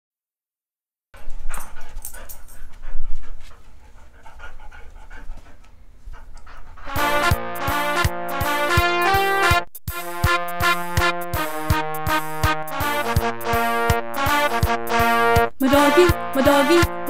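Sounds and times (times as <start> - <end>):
upbeat synthesizer music: 6.9 - 17.0.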